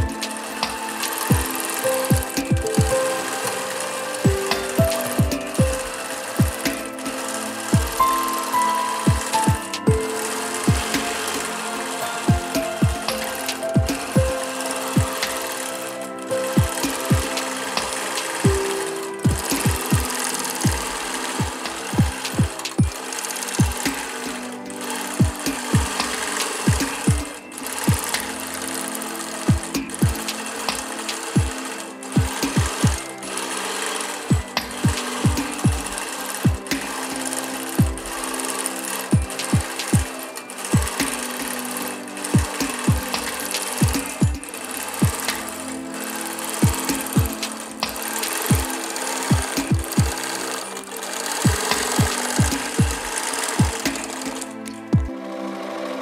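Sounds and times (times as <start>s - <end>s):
quilting machine stitching: 0.0s - 55.2s
music playing: 0.0s - 56.0s.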